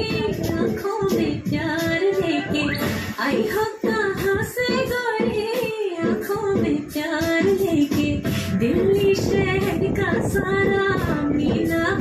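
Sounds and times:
woman singing over music: 0.0 - 12.0.

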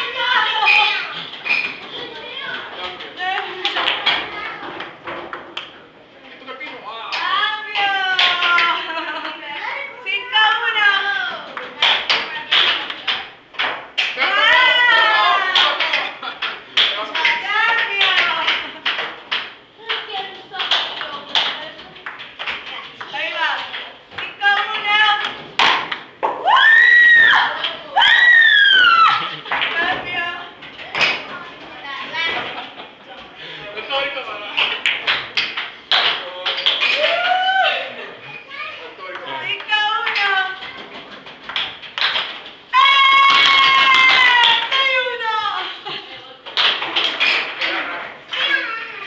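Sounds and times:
voices talking and calling out: 0.0 - 13.5
chatter: 0.0 - 49.0
loud high-pitched shouts: 26.4 - 29.3, 42.7 - 45.5.

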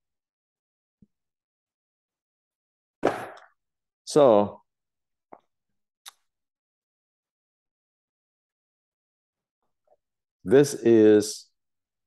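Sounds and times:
book thump on surface: 3.0 - 3.4.

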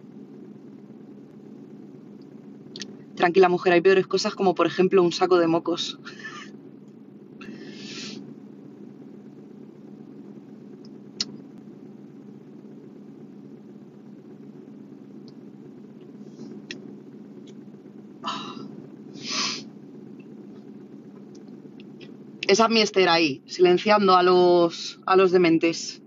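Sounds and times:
low hum inside a car: 0.0 - 26.0
person sniffing: 7.5 - 8.2, 19.2 - 19.7.

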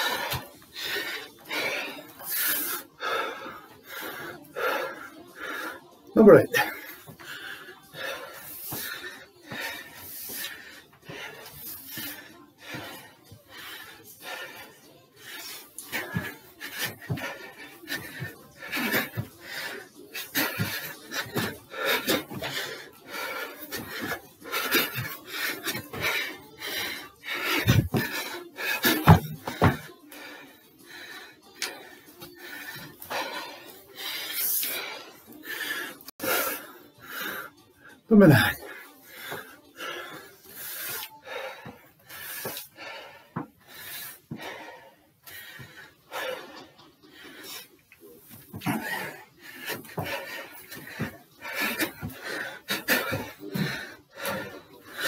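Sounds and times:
feet thudding on stairs: 16.0 - 19.6, 20.4 - 22.7, 27.4 - 30.0, 48.3 - 54.5.

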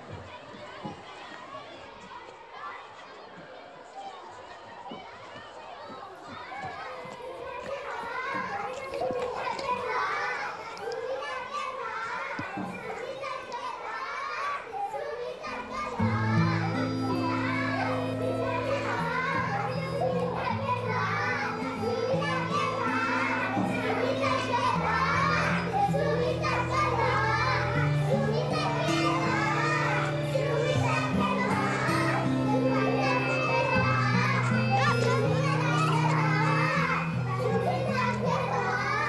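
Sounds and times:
girls calling and chattering: 0.0 - 39.0
music of long held low notes: 15.7 - 39.0.

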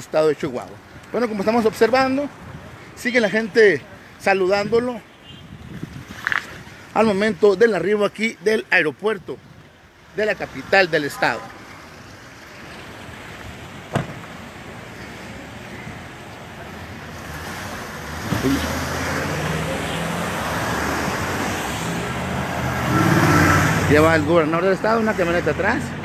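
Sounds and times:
cars driving past: 10.1 - 26.0.

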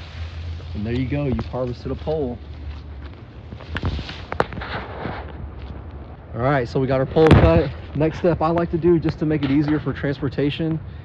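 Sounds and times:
bamboo branches rustling on ground: 0.0 - 5.8.

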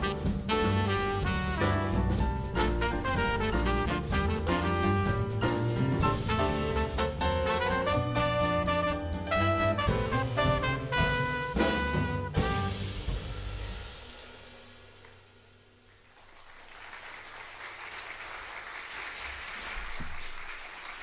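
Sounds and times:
jazz combo playing: 0.0 - 15.0
audience applause: 15.9 - 21.0.

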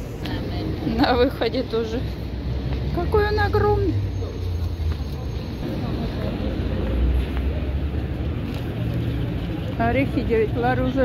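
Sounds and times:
city traffic rumble: 0.0 - 11.0
faint voices of passers-by: 0.0 - 11.0.

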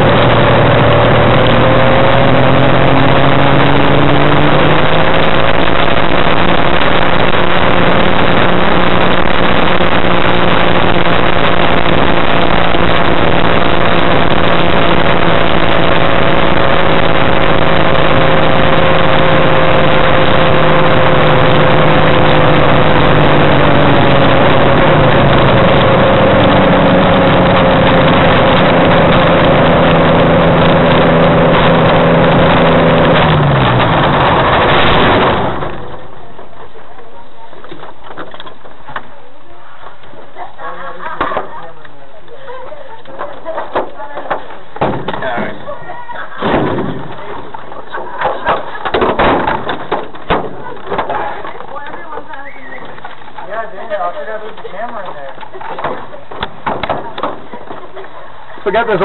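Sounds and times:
aircraft engine running: 0.0 - 39.4
steady noisy rush: 0.0 - 59.0.

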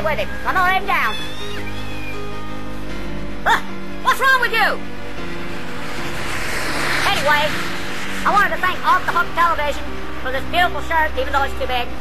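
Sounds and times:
car passing: 0.0 - 12.0.

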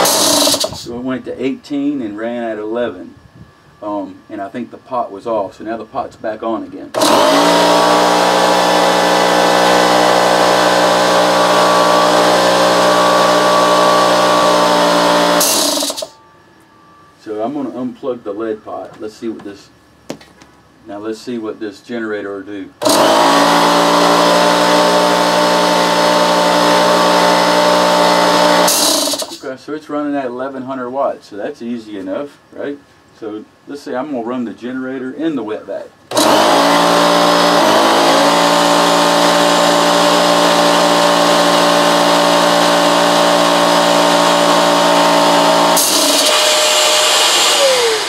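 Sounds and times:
air compressor running: 0.0 - 0.9, 7.0 - 16.2, 22.8 - 29.4, 36.1 - 48.0.

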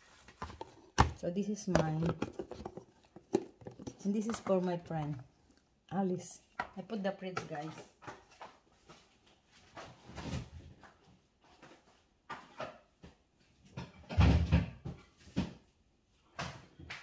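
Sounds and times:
plastic containers knocked: 0.4 - 5.2
fridge door opening and shutting: 13.8 - 15.0.

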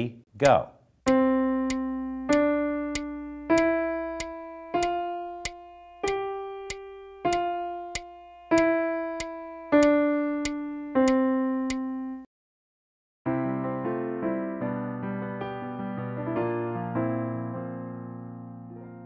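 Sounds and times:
light metronome click: 0.4 - 11.8
piano playing slow scale: 1.1 - 12.3, 13.3 - 19.0.

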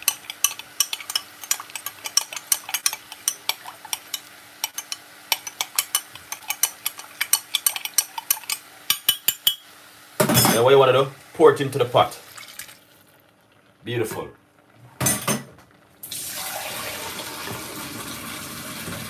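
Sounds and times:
metal spoon clinking glass jug: 0.0 - 9.6.

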